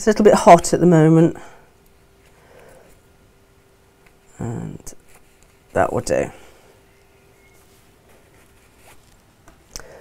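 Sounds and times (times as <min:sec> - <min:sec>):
fabric rustling: 0:05.0 - 0:09.7.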